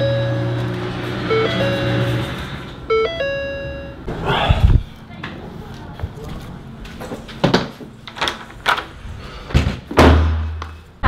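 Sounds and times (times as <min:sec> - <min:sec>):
car warning chime: 0:00.0 - 0:04.1.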